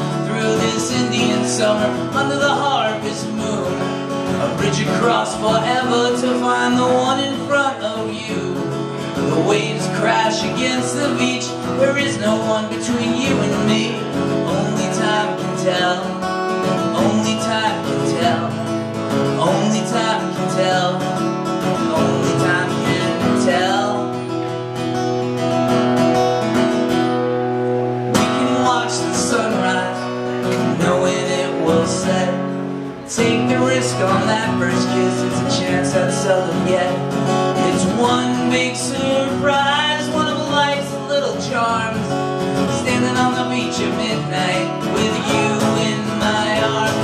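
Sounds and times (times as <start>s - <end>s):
man singing: 0.0s - 24.6s, 28.0s - 47.0s
acoustic guitar strumming: 0.0s - 47.0s.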